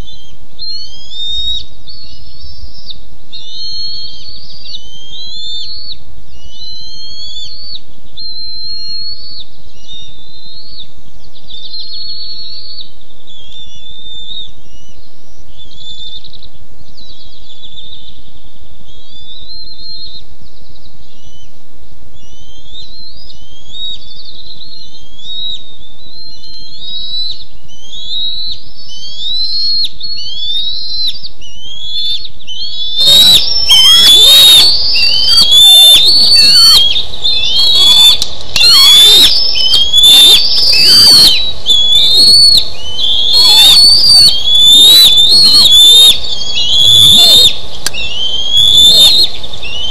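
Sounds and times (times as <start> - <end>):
eaglets chirping alarm calls: 0.0 - 2.6, 3.3 - 10.8, 26.2 - 49.9.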